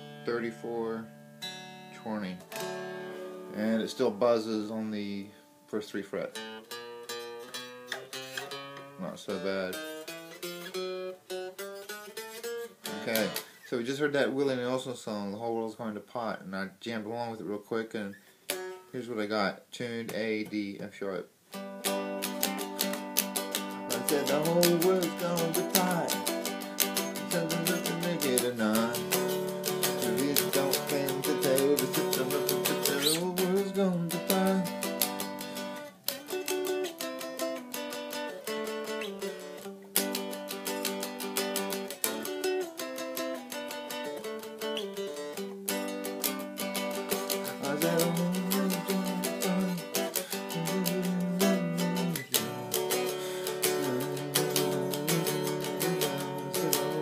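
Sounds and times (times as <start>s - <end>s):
cigar box guitar country song: 0.0s - 57.0s.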